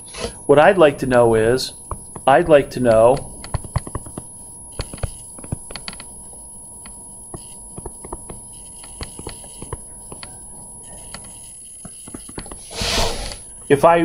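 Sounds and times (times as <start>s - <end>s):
steady low hum: 0.0s - 14.0s
short rush of noise: 12.7s - 13.4s.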